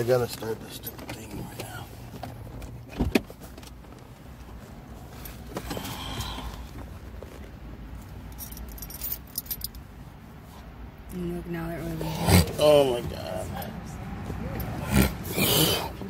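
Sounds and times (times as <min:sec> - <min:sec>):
jangling clicking handling noise: 0:08.4 - 0:09.8.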